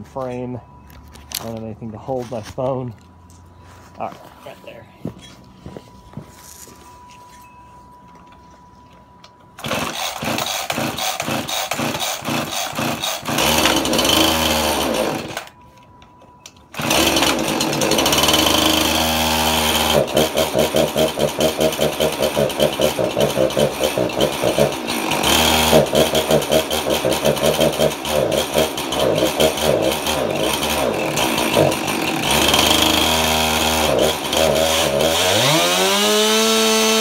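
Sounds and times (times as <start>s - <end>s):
chainsaw starting and revving: 9.6s - 15.5s, 16.7s - 37.0s.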